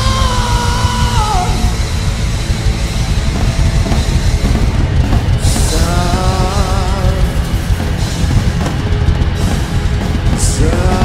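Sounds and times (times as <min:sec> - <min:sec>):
drum kit: 0:00.0 - 0:11.0
hard rock band playing live: 0:00.0 - 0:11.0.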